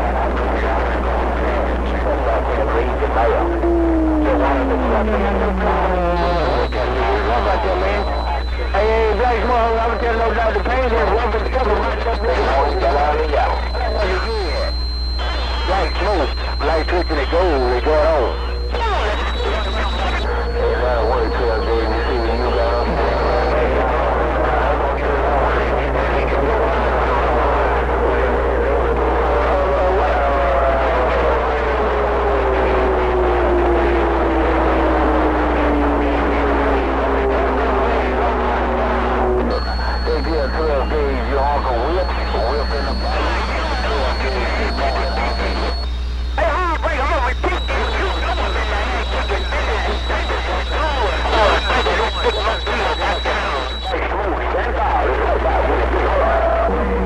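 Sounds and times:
radio static: 0.0s - 57.0s
unintelligible radio voices: 0.0s - 57.0s.

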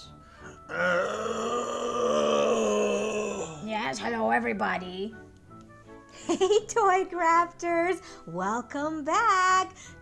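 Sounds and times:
person groaning: 0.7s - 3.7s.

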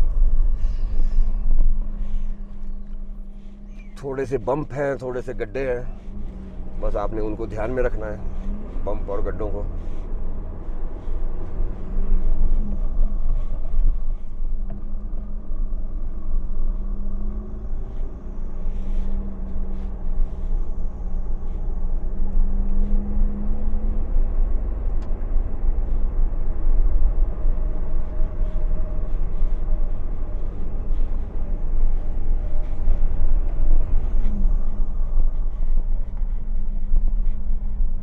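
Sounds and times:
diesel engine running: 0.0s - 38.0s
tyres rumbling on rough track: 0.0s - 38.0s.

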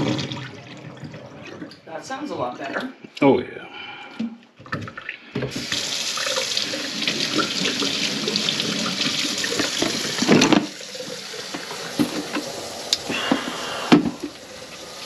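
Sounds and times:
tap water running into sink: 0.0s - 1.9s, 4.8s - 15.0s.

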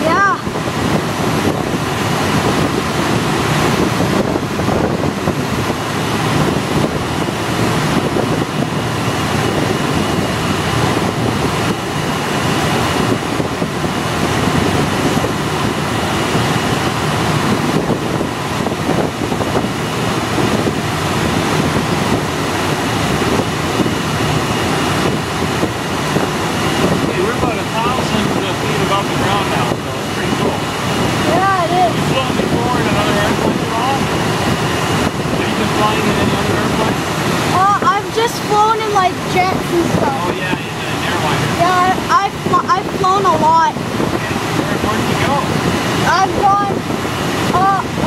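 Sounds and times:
air rushing over glider: 0.0s - 48.0s.

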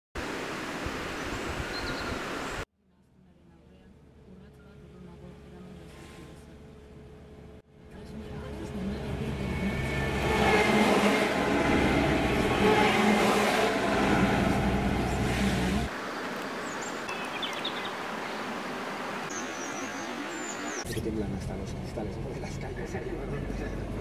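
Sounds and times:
trucks driving past on wet road: 8.0s - 16.0s.

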